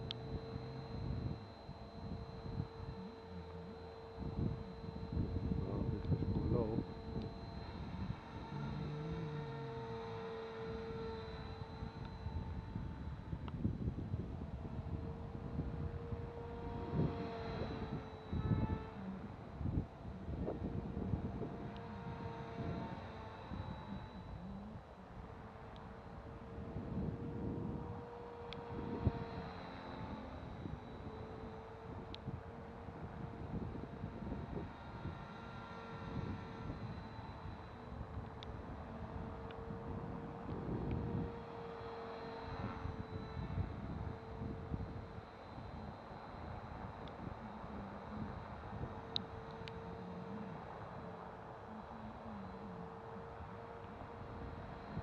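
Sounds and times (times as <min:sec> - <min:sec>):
wind noise on microphone: 0:00.0 - 0:25.4, 0:26.1 - 0:50.5
rc helicopter motor whine: 0:00.0 - 0:55.0.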